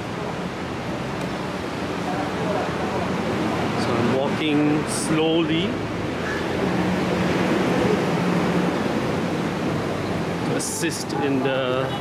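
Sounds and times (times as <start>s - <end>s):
constant rushing noise: 0.0s - 12.0s
faint voices of passers-by: 0.0s - 12.0s.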